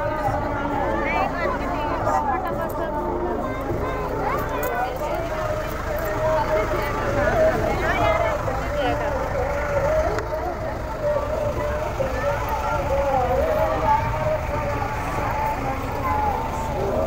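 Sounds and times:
person singing or chanting: 0.0s - 17.0s.

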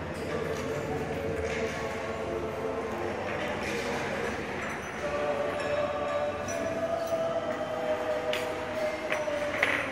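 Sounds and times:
restaurant room noise: 0.0s - 9.9s.

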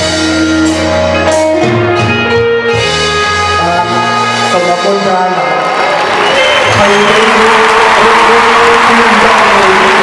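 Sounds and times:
live band playing: 0.0s - 10.0s
audience applauding: 5.4s - 10.0s.

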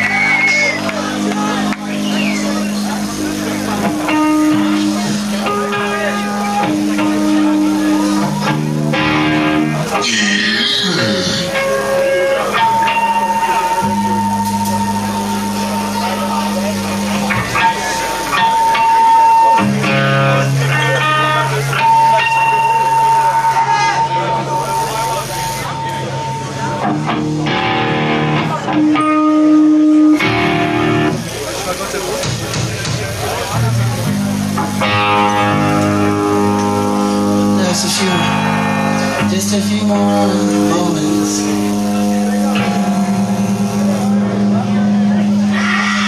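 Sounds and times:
voices shouting: 0.0s - 2.8s, 45.5s - 46.0s
amplified guitars ringing: 0.0s - 31.9s, 33.2s - 46.0s
crowd chatter and shouts: 0.0s - 46.0s
steady high tone: 34.8s - 46.0s.

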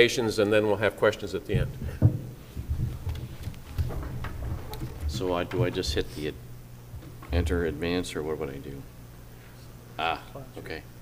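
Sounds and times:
soft knocks and thumps: 1.5s - 6.1s.

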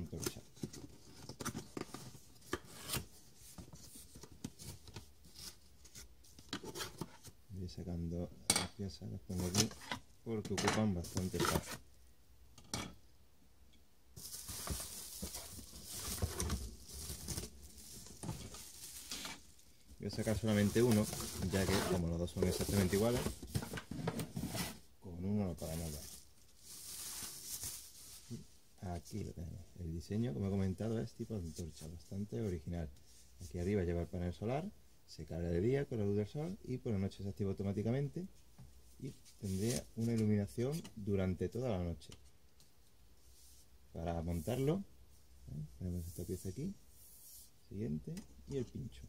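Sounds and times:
cardboard rustling: 11.0s - 11.8s, 14.2s - 24.9s.

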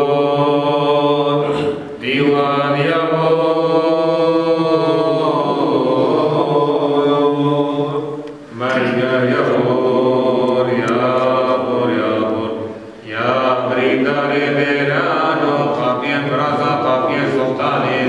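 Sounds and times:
man chanting a hymn: 0.0s - 18.0s.

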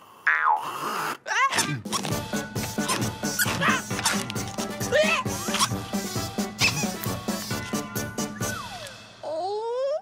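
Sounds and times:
lively cartoon music: 1.6s - 9.6s
high squeaks and yelps: 2.8s - 4.3s, 5.0s - 5.8s, 6.6s - 7.0s.

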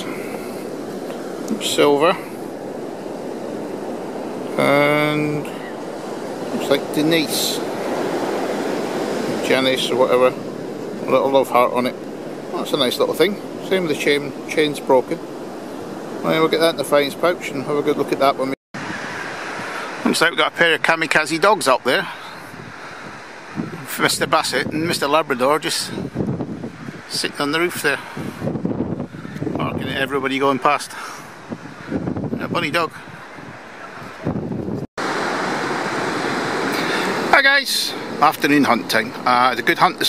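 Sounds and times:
outdoor background hiss: 0.0s - 34.2s, 34.8s - 40.0s
sea surf: 0.0s - 40.0s
wind: 0.0s - 40.0s.

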